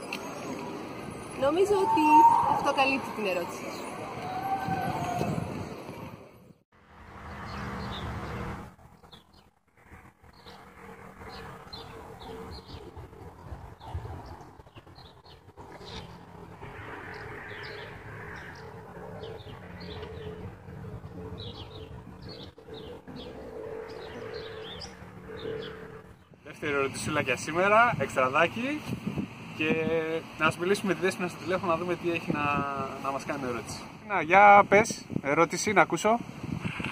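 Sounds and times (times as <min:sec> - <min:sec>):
birds chirping: 0:00.0 - 0:06.6, 0:07.3 - 0:09.6, 0:10.3 - 0:34.6.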